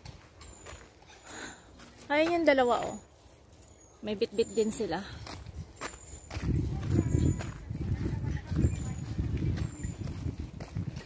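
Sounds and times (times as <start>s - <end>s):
footsteps on paved path: 0.0s - 11.0s
wind buffeting microphone: 4.5s - 11.0s.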